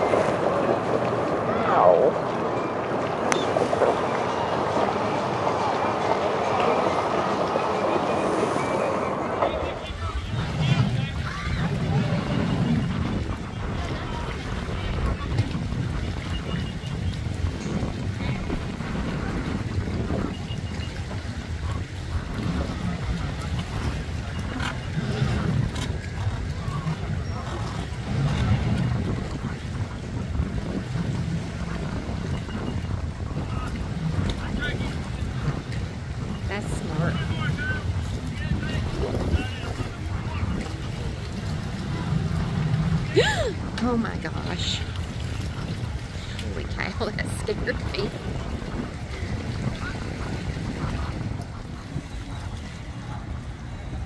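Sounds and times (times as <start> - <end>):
faint distant voices: 0.0 - 19.7
boat engines idling: 0.0 - 54.0
wind on microphone: 0.0 - 54.0.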